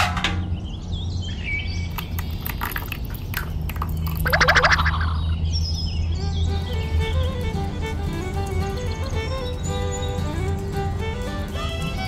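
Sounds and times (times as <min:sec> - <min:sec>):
birds chirping: 0:00.4 - 0:12.0
steady low hum: 0:00.8 - 0:12.0
quick bird trills: 0:04.2 - 0:07.4.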